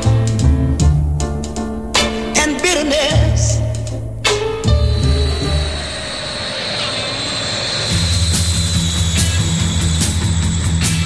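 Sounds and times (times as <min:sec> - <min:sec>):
rock music with bass and drums: 0:00.0 - 0:06.0, 0:08.2 - 0:11.0
rushing whoosh with falling whine: 0:00.0 - 0:11.0.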